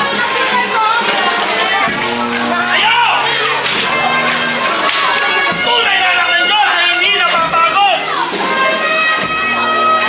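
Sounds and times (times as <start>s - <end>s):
music and sustained tones: 0.0s - 10.0s.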